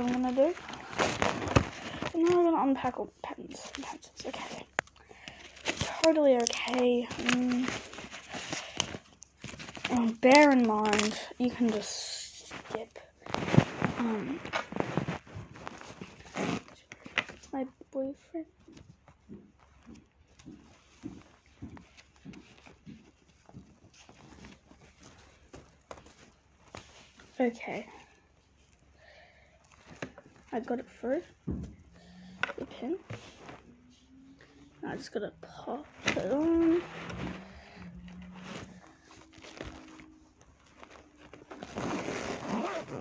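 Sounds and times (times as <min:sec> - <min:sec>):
small handling clicks and rustles: 0:00.0 - 0:43.0
faint low hum: 0:30.4 - 0:43.0.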